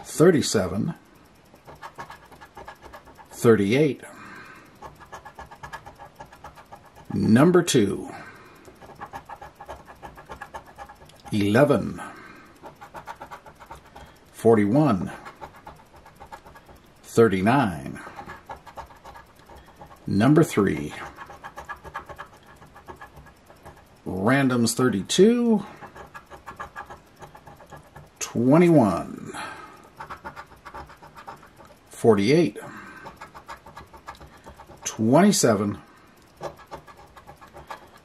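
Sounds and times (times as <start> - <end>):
coin scratching lottery ticket: 0.0 - 38.0.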